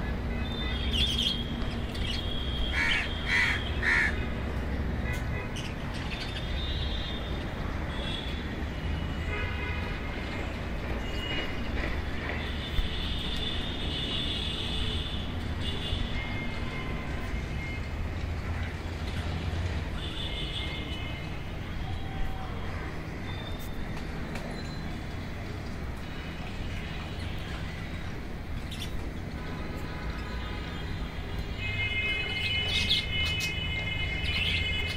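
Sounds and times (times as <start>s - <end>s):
birds chirping and calling: 0.4s - 4.2s, 5.5s - 6.8s, 27.6s - 29.2s, 32.3s - 34.9s.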